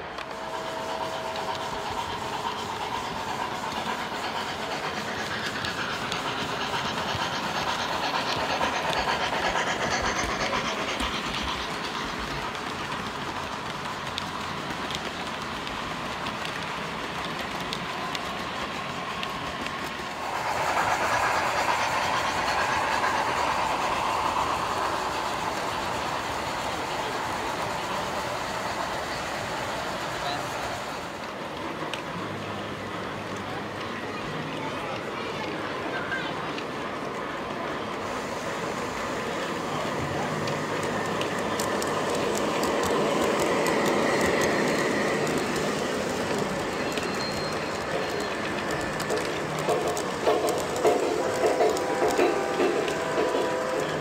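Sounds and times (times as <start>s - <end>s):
crowd chatter: 0.0s - 54.0s
model train wheels clacking: 0.0s - 54.0s.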